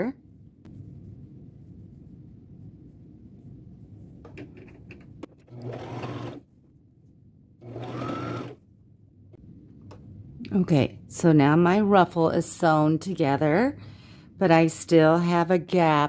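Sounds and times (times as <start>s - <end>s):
sewing machine motor whine: 7.6s - 8.6s.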